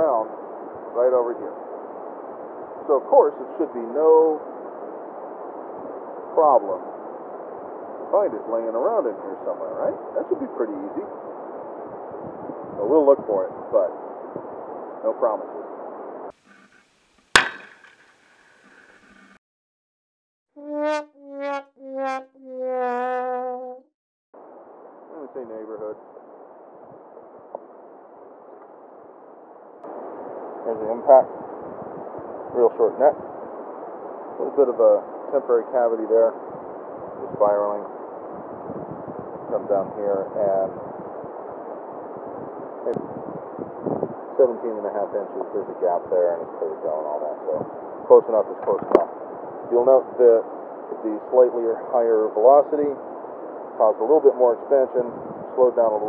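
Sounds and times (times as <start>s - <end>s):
revolver shot: 17.3s - 18.1s
brief vocal sound: 20.6s - 23.9s.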